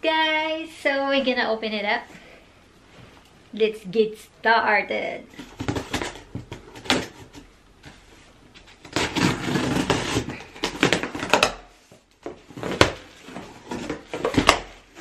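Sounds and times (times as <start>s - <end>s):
cardboard flaps crackling: 5.3s - 11.6s
packing tape slit and peeled: 8.8s - 11.6s.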